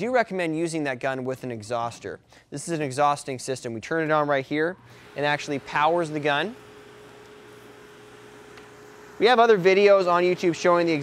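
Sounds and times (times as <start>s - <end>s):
exhaust fan hiss and hum: 4.5s - 11.0s.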